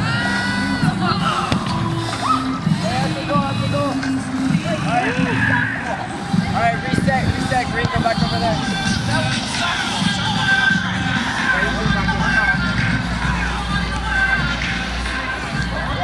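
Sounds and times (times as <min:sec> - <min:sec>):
background music: 0:00.0 - 0:16.0
people calling and shouting: 0:00.0 - 0:16.0.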